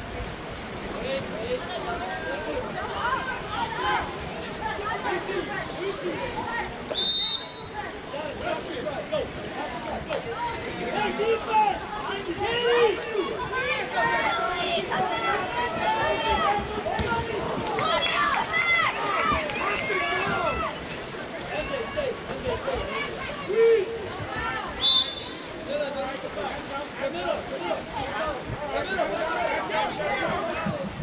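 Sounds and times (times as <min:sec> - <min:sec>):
spectators chattering and calling out: 0:00.0 - 0:31.0
referee's whistle blast: 0:07.0 - 0:07.8, 0:24.8 - 0:25.4.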